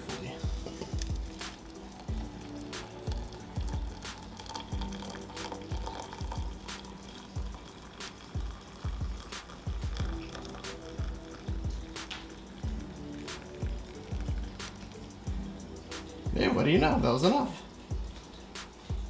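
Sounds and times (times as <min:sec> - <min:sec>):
water pouring into a mug: 0:00.0 - 0:15.3
music with a steady beat: 0:00.0 - 0:19.0.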